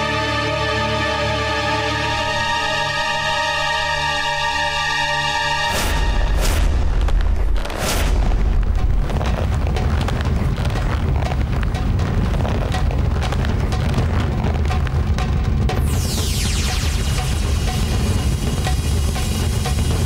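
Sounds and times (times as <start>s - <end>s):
dramatic background score: 0.0s - 20.0s
heavy low rumble and booms: 5.9s - 20.0s.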